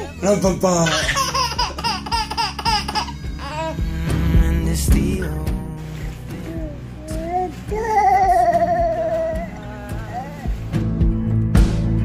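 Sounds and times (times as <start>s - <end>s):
baby giggling: 0.8s - 4.4s.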